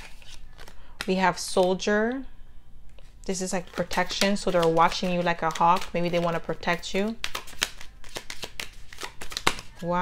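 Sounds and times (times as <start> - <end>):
cards shuffled by hand: 0.0 - 0.9, 3.0 - 10.0.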